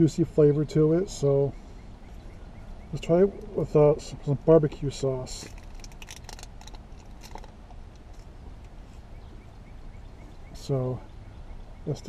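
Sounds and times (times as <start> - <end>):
steady low hum: 0.0 - 12.0
foil lid crackling: 5.5 - 7.5.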